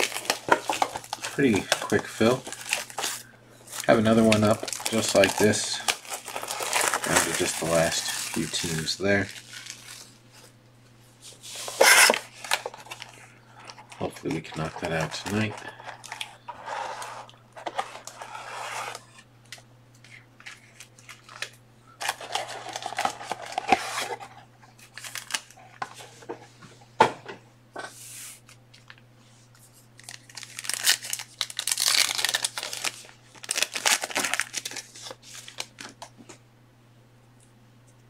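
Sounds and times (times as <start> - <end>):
packaging tearing and crinkling: 0.0 - 10.2, 11.6 - 19.0, 20.6 - 25.6, 30.0 - 36.1
faint steady hum: 0.0 - 38.0.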